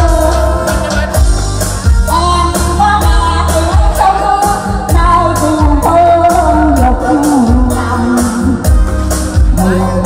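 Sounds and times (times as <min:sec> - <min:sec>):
keyboard backing with beat: 0:00.0 - 0:10.0
woman singing pop song: 0:00.0 - 0:10.0.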